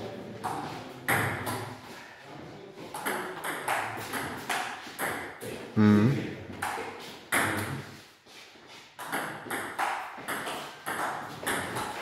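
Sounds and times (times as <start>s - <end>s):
table tennis ball hits: 3.0s - 5.4s, 9.0s - 12.0s.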